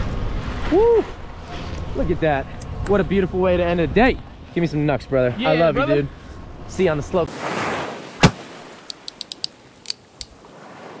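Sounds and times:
sharp high clicks: 8.9 - 10.4.

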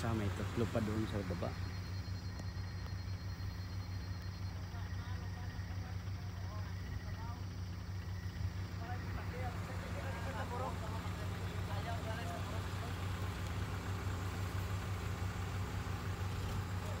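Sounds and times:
diesel engine idling: 0.0 - 17.0
faint voices talking: 4.0 - 14.5.

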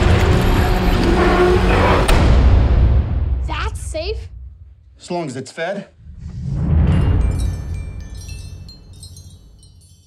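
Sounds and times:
high chimes tinkling: 6.9 - 10.0.

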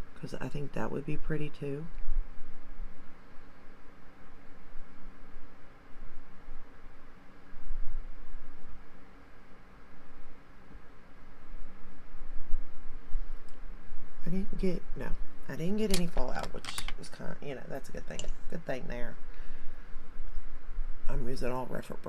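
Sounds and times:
faint low hum: 0.0 - 22.0.

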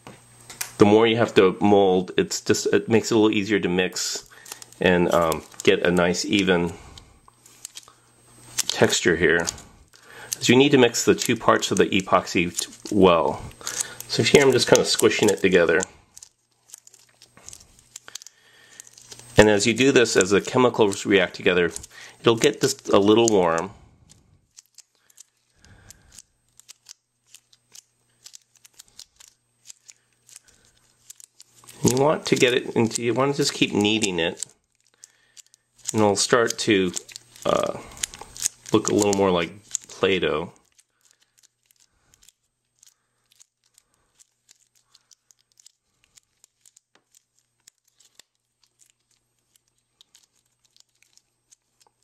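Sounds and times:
gloves and putty clicking: 3.0 - 52.0.

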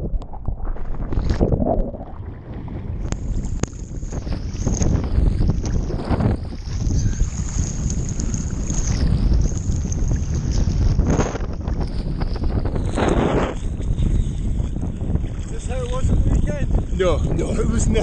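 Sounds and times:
sea water sloshing and splashing: 0.0 - 16.6
wind buffeting microphone: 0.0 - 18.0.

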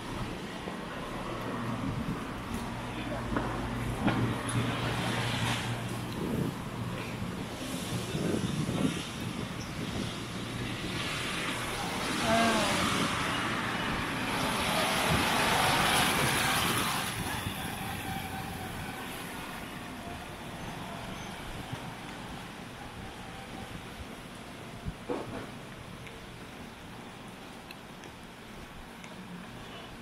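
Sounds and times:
street noise: 0.0 - 30.0.

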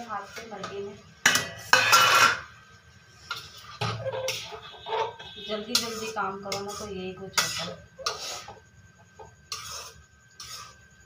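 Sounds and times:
steel kitchenware clinking: 1.2 - 2.5, 3.3 - 8.5.

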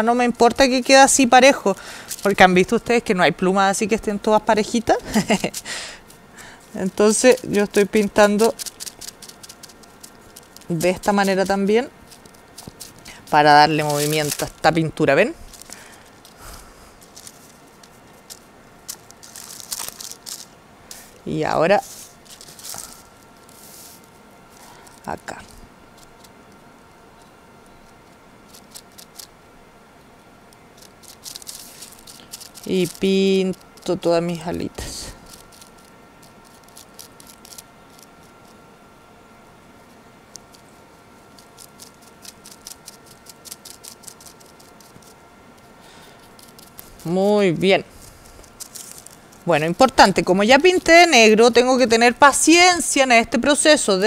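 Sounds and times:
paintbrush scratching on plastic: 5.0 - 14.8, 15.4 - 21.1, 21.8 - 24.1, 30.7 - 38.6, 41.3 - 45.2, 46.2 - 52.2.

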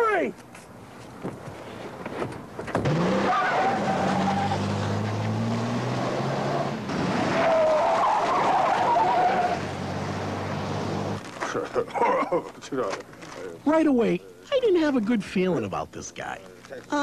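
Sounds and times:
car engine revving: 2.7 - 11.2
tyres squealing: 7.3 - 9.6.

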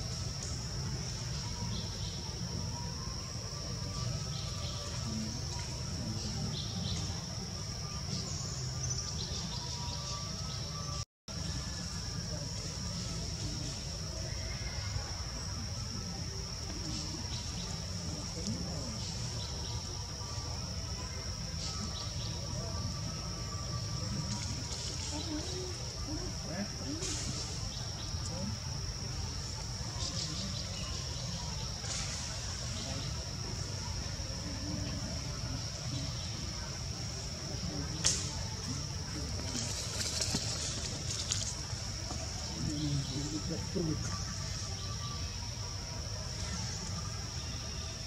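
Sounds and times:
faint indistinct voices: 0.0 - 48.0
insects droning: 0.0 - 48.0.

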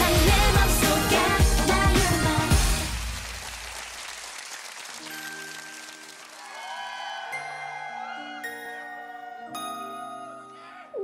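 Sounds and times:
loud pop music: 0.0 - 3.2
audience applause: 2.6 - 8.6.

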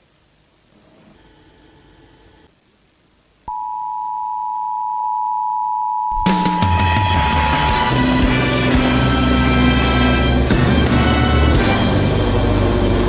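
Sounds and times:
steady electronic tone: 3.5 - 10.5.

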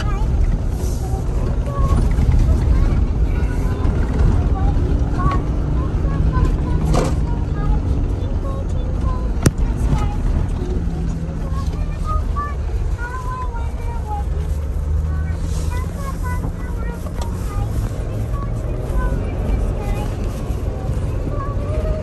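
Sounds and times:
vehicle rumbling over rough trail: 0.0 - 22.0.

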